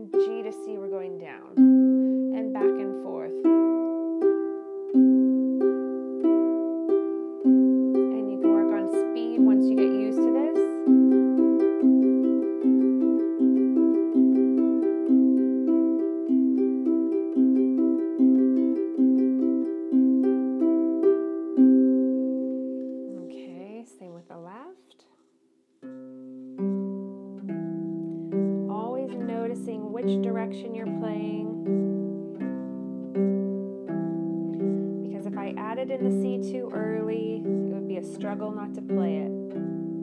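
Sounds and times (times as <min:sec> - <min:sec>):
harp plucked notes: 0:00.0 - 0:24.7, 0:25.8 - 0:40.0.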